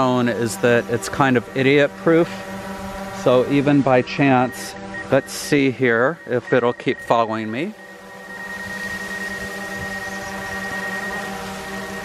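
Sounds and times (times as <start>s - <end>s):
drone propellers humming: 0.0s - 12.0s
thin high whine: 0.0s - 12.0s.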